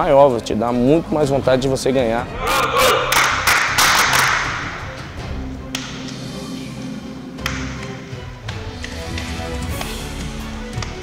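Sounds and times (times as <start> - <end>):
background music with sustained tones: 0.0 - 11.0
small group clapping: 2.9 - 4.9.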